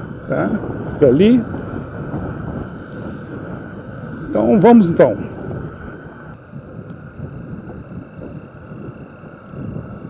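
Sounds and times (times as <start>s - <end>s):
motorcycle engine running: 0.0s - 10.0s
wind rumbling on microphone: 0.0s - 10.0s.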